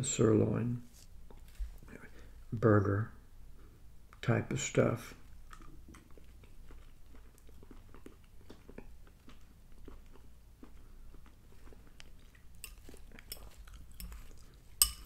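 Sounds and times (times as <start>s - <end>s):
man chewing food: 5.2s - 15.0s
fork clicking on ceramic bowl: 12.6s - 15.0s.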